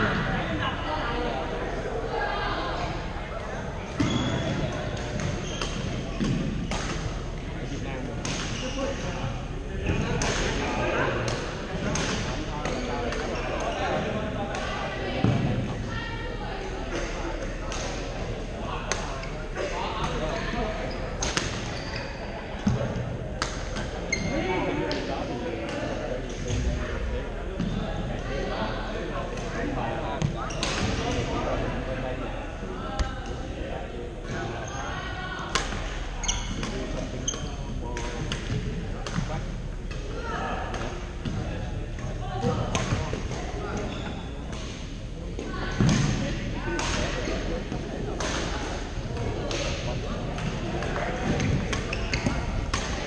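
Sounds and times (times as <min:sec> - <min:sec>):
shoe squeaks on court floor: 0:04.0 - 0:04.6, 0:05.4 - 0:05.8, 0:20.8 - 0:22.2, 0:36.2 - 0:37.6, 0:43.8 - 0:44.4, 0:51.8 - 0:52.5
rackets hitting shuttlecock: 0:35.5 - 0:35.9.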